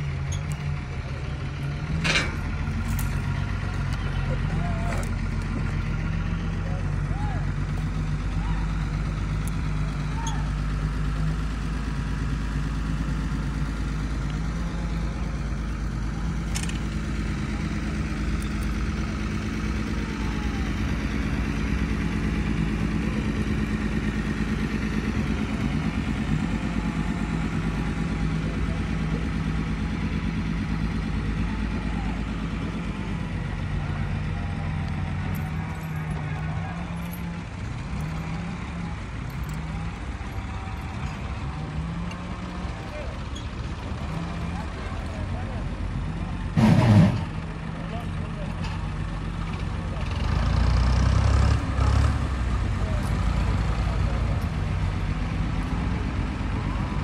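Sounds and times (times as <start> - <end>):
people's voices: 0.0 - 57.0
truck engine idling: 0.0 - 57.0.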